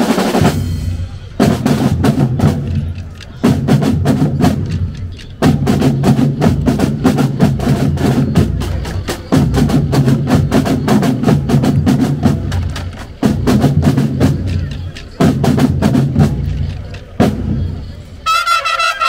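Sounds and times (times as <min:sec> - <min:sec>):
marching snare and bass drums: 0:00.0 - 0:19.0.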